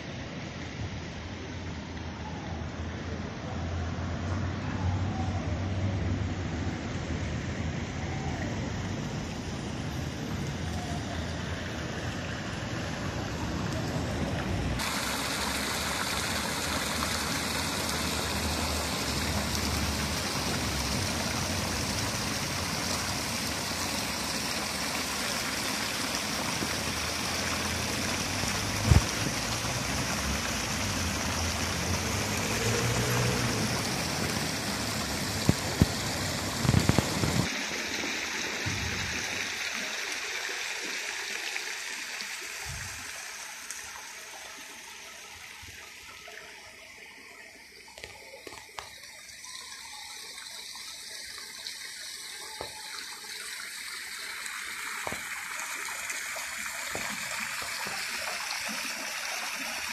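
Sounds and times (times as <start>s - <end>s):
fountain water splashing: 0.0s - 59.9s.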